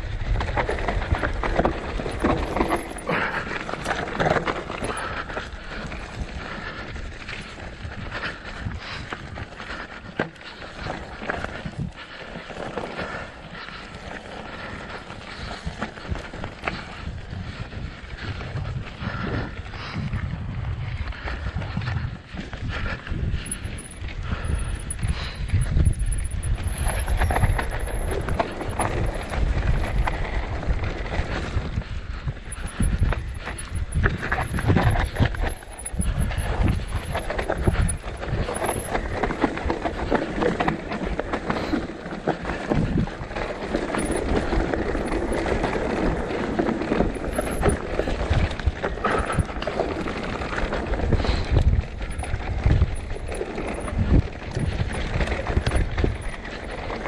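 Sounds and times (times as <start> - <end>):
bike rattling: 0.0 - 57.0
wind on microphone: 15.3 - 41.3, 42.5 - 57.0.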